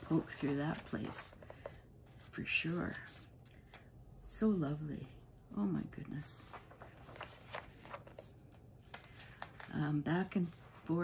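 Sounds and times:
magazine pages rustling: 0:00.0 - 0:03.8, 0:06.4 - 0:11.0.

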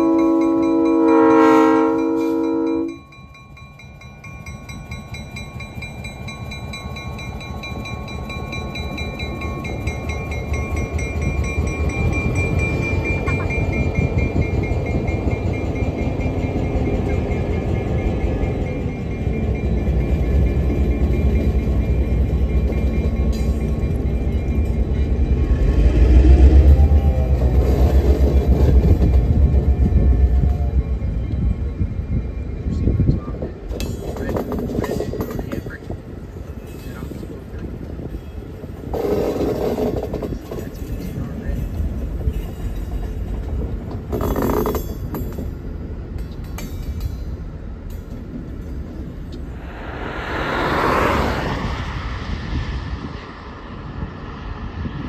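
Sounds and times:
steel wheels rumbling on track: 0:00.0 - 0:55.0
wheels clacking over rail joints: 0:32.7 - 0:49.4.

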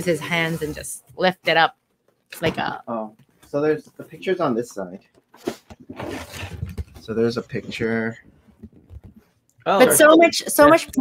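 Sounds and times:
cardboard lid scraping off box: 0:05.4 - 0:07.1.

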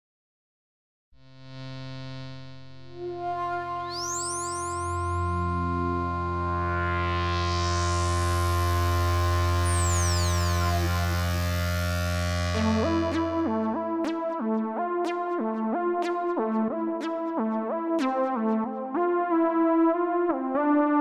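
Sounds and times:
ambient synthesizer music: 0:03.0 - 0:21.0.

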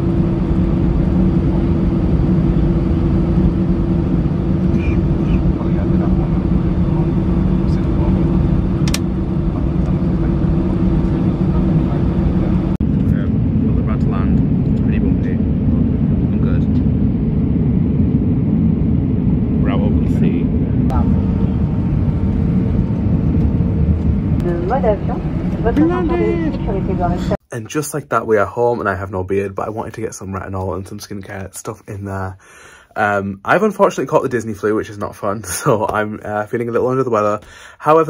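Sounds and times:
jet cabin engine and air noise: 0:00.0 - 0:27.4.

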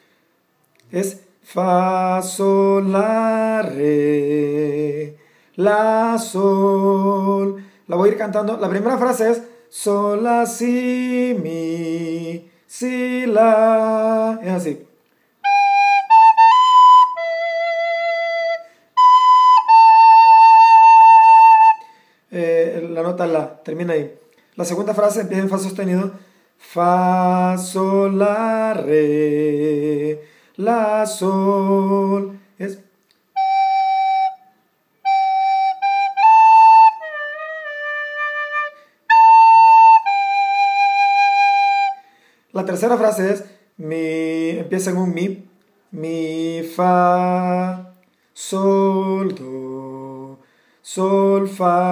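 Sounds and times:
recorder playing held notes: 0:15.4 - 0:21.8, 0:33.4 - 0:42.0.

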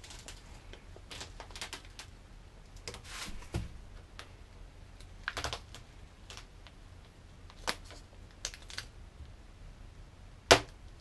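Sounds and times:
masking tape peeling crackle: 0:00.0 - 0:02.2, 0:07.5 - 0:09.0.

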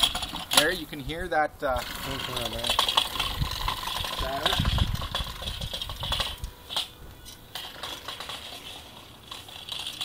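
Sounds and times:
metallic clinks and rattles: 0:01.8 - 0:10.0.

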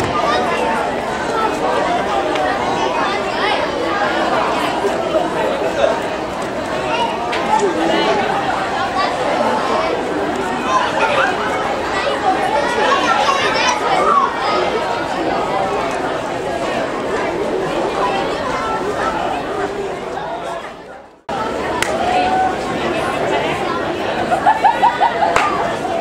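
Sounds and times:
crowd chatter: 0:00.0 - 0:26.0.

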